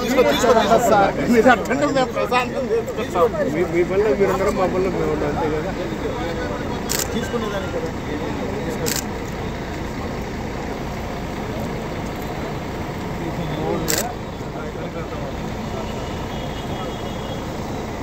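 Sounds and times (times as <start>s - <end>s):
vehicle engines running: 0.0s - 18.0s.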